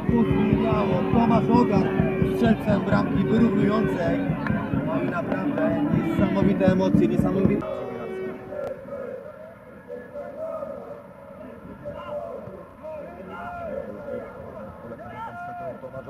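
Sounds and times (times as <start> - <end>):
outdoor ambience hum: 0.0 - 16.0
voices calling and shouting: 0.0 - 16.0.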